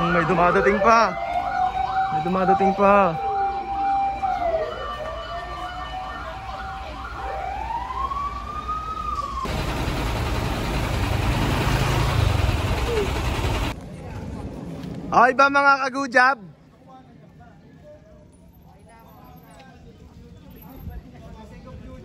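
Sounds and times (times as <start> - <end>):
fire engine sirens wailing: 0.0 - 13.8
loud steady rushing noise: 9.4 - 14.5.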